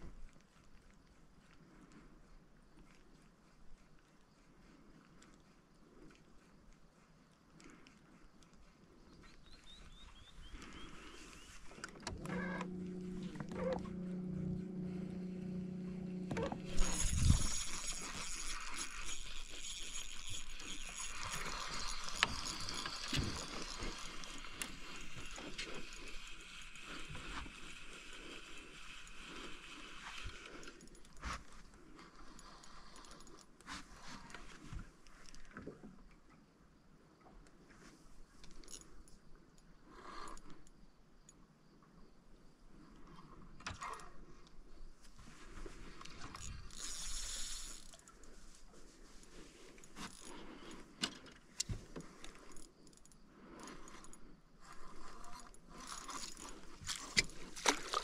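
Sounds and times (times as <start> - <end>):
fishing reel clicking and whirring: 10.6 - 33.6, 45.8 - 58.0.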